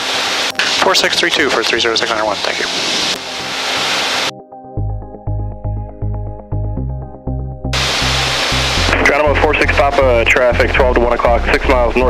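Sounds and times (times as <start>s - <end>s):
aircraft cabin drone: 0.0s - 4.3s, 7.8s - 12.0s
background music with bass line: 4.3s - 12.0s.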